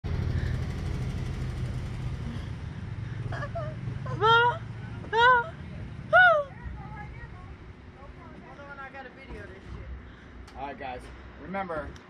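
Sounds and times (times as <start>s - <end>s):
low mechanical rumble: 0.0s - 12.0s.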